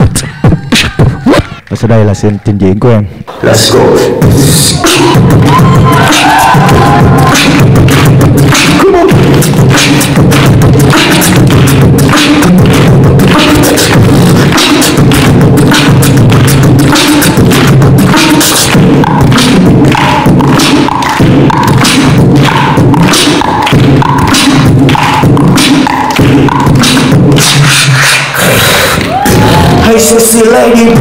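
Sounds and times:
beatboxing into a microphone: 0.0 - 31.0.

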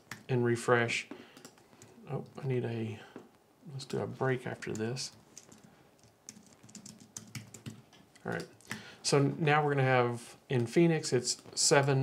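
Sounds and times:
keyboard typing: 0.0 - 0.3, 1.3 - 2.4, 4.5 - 8.9.

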